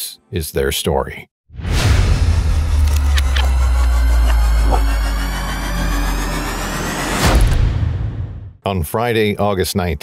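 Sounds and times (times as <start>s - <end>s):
deep bass drone: 1.6s - 8.6s
high tones rising: 2.5s - 7.5s.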